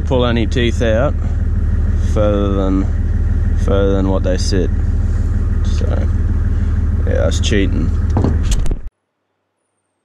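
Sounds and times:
man's voice: 0.0 - 1.3, 7.0 - 7.9
engine idling rumble: 0.0 - 8.9.

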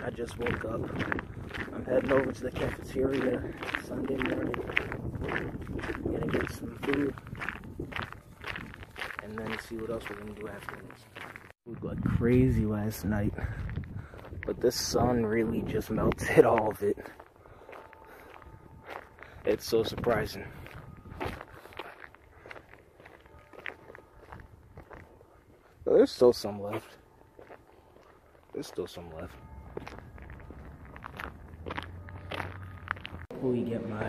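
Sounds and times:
footsteps walking: 0.0 - 34.0.

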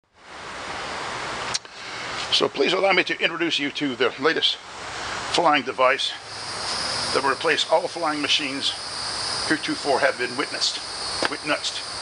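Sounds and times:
steady broad hiss: 0.2 - 12.0.

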